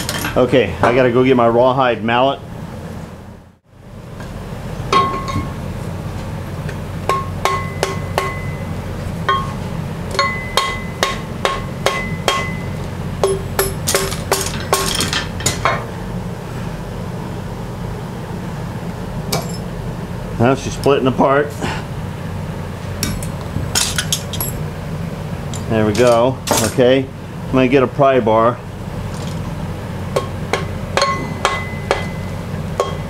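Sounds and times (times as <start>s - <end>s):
shop fan humming: 0.0s - 33.0s
mallet knocking on metal: 7.1s - 8.6s, 10.2s - 14.9s, 30.2s - 33.0s.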